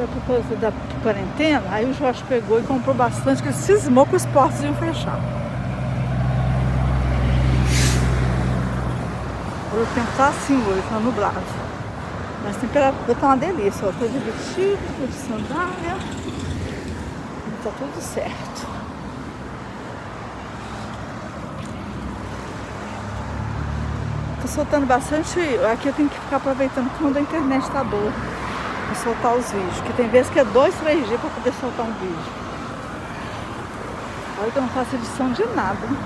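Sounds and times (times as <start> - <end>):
street traffic noise: 0.0 - 36.0
truck engine passing: 2.7 - 11.7
air hiss from truck: 7.6 - 8.2.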